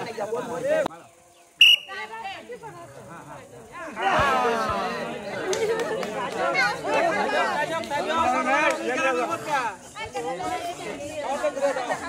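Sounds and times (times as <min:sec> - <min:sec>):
men talking excitedly: 0:00.0 - 0:12.0.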